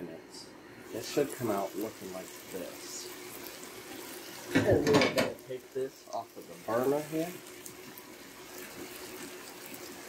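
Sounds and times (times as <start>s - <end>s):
faint steady hum: 0.0s - 10.0s
food simmering in a skillet: 0.8s - 10.0s.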